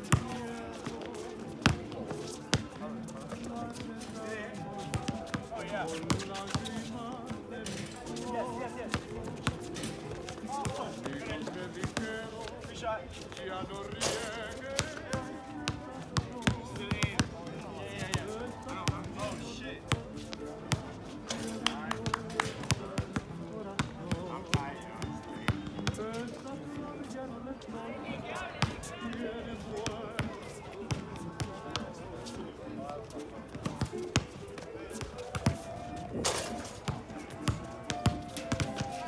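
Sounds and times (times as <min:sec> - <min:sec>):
music: 0:00.0 - 0:39.0
voices: 0:00.0 - 0:39.0.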